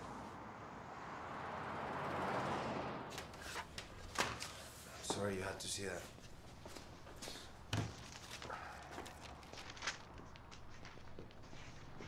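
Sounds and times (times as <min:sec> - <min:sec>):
vehicle passing: 0:00.0 - 0:04.0.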